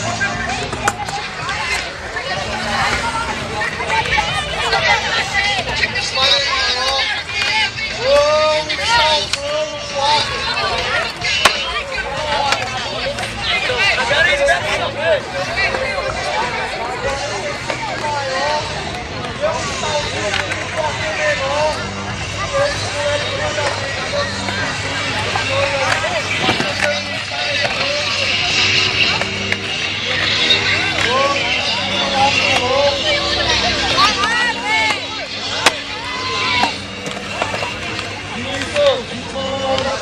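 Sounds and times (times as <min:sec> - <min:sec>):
crowd talking: 0:00.0 - 0:40.0
skateboard clacking on concrete: 0:00.5 - 0:09.6, 0:10.2 - 0:14.3, 0:23.4 - 0:31.6, 0:32.2 - 0:39.0.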